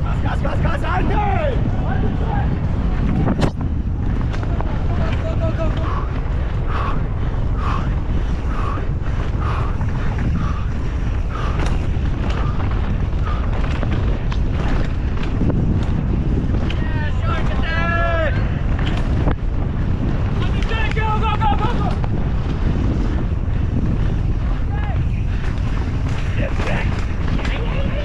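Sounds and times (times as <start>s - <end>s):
mountain bike rattling: 0.0s - 28.0s
wind rushing over camera: 0.0s - 28.0s.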